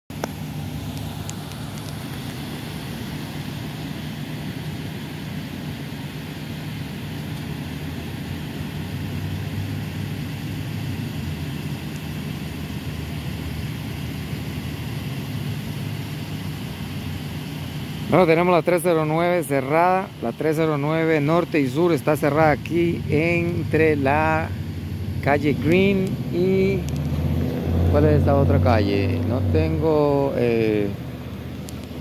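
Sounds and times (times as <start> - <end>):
pickup truck engine idling: 0.1 - 32.0.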